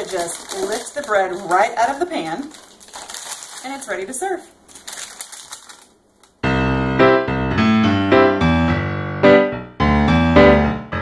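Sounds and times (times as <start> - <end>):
paper crinkling: 0.0 - 6.4
piano playing single notes: 6.4 - 11.0.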